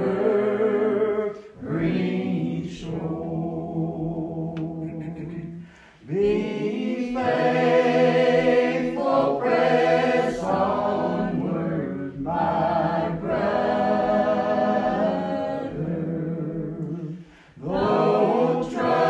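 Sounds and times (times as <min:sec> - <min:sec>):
congregation singing a hymn: 0:00.0 - 0:19.0.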